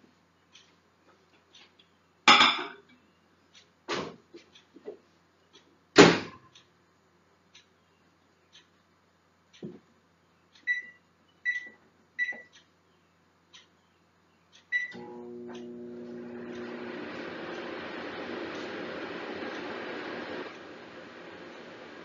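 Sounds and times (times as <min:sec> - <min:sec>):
microwave keypad beeps: 0:10.6 - 0:12.5, 0:14.7 - 0:15.1
microwave humming with fan: 0:13.9 - 0:22.0.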